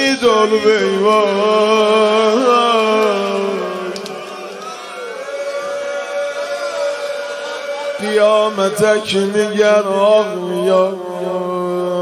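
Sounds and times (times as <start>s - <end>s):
man singing long note: 0.0s - 4.5s, 7.7s - 12.0s.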